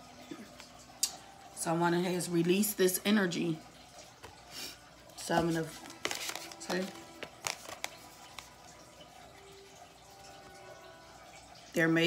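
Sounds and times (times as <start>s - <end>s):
card clicks: 5.8s - 8.5s
cards flicking and snapping: 5.8s - 8.5s.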